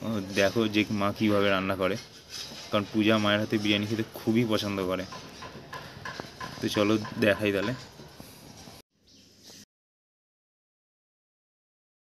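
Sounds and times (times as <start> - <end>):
man speaking: 0.0 - 2.1, 2.7 - 5.1, 6.6 - 7.9.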